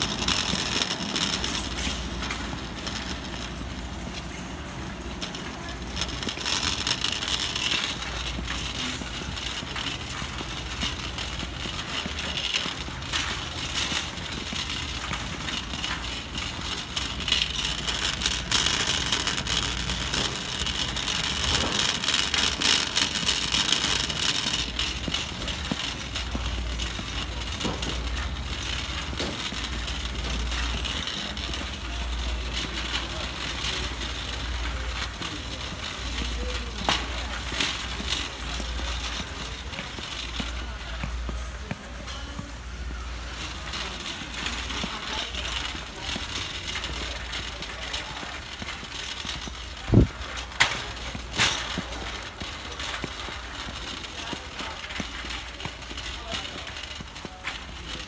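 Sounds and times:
footsteps: 0:00.0 - 0:58.0
shopping cart rattling: 0:00.0 - 0:58.0
store background noise: 0:00.0 - 0:58.0.

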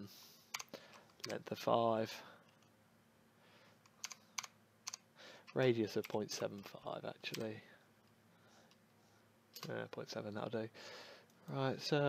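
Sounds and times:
keyboard and mouse clicking: 0:00.5 - 0:01.4, 0:03.9 - 0:06.7.

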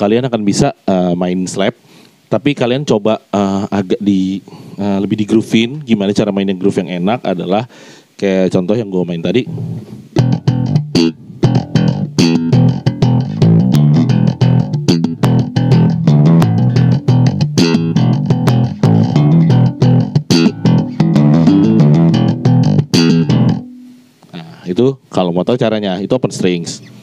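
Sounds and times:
electric bass slap groove: 0:09.4 - 0:24.4.

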